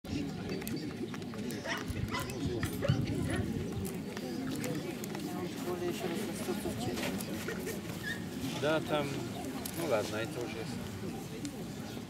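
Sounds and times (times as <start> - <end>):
people chattering: 0.1 - 12.0.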